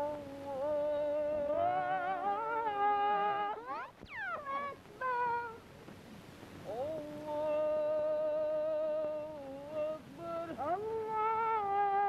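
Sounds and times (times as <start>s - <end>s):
man chanting a prayer: 6.6s - 12.0s.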